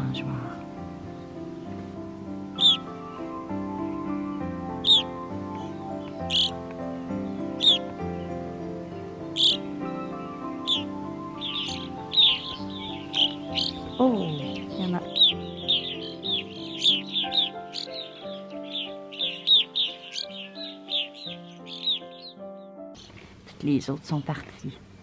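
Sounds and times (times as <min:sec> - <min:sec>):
soft instrumental music: 0:00.0 - 0:23.1
birds calling sharp notes: 0:00.0 - 0:23.3.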